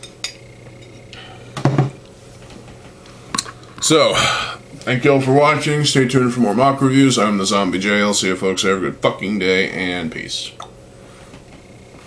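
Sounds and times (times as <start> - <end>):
man sighing: 4.1 - 4.6.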